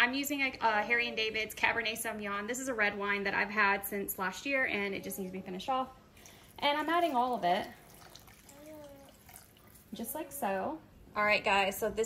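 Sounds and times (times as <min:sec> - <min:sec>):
liquid trickling and splashing: 0:06.2 - 0:10.0.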